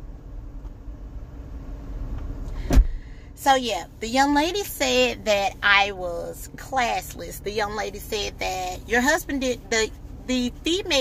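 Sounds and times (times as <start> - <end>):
car engine idling: 0.0 - 11.0
faint steady hum: 0.0 - 11.0.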